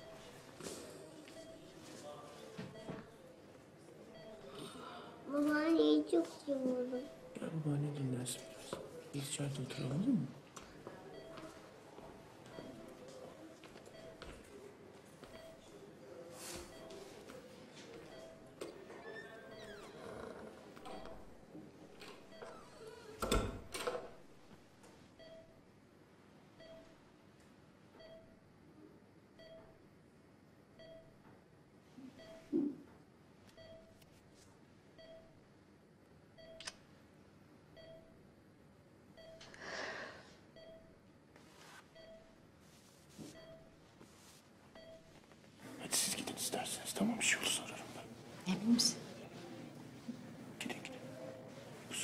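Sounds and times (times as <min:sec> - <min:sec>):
patient monitor beeping: 0:00.0 - 0:03.4, 0:04.0 - 0:04.9, 0:06.8 - 0:24.3, 0:25.2 - 0:25.7, 0:26.6 - 0:27.0, 0:28.0 - 0:28.5, 0:29.3 - 0:29.8, 0:30.7 - 0:31.2, 0:32.0 - 0:32.8, 0:33.4 - 0:34.1, 0:35.0 - 0:35.4, 0:36.3 - 0:36.8, 0:37.7 - 0:38.2, 0:39.1 - 0:39.6, 0:40.4 - 0:41.0, 0:41.9 - 0:42.4, 0:43.3 - 0:43.8, 0:44.7 - 0:52.0
soft rustling: 0:41.4 - 0:42.0, 0:42.6 - 0:45.6.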